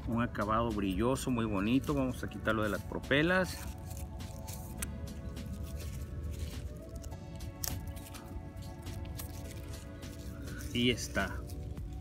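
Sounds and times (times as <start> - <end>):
background music with held tones: 0.0 - 12.0
plastic film crinkling: 1.2 - 12.0.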